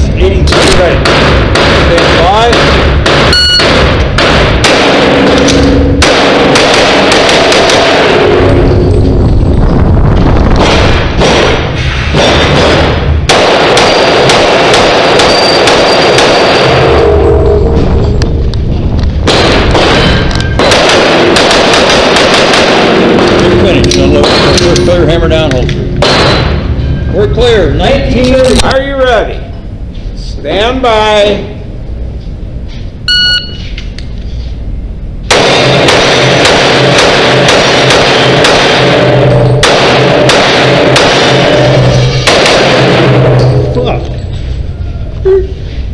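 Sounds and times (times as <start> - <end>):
pistol gunfire echoing indoors: 0.4 - 8.9, 10.5 - 17.3, 19.0 - 26.9, 35.2 - 43.7.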